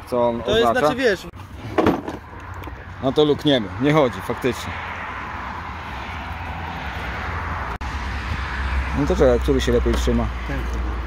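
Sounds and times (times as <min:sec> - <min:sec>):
road traffic hiss and rumble: 0:00.0 - 0:11.0.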